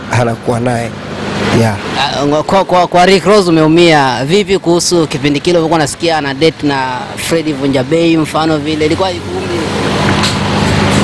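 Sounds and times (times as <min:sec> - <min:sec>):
vehicle passing by: 0:00.0 - 0:11.0.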